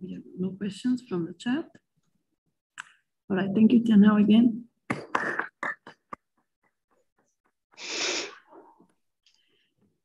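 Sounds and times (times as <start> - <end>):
breath hitting microphone: 7.7 - 10.0.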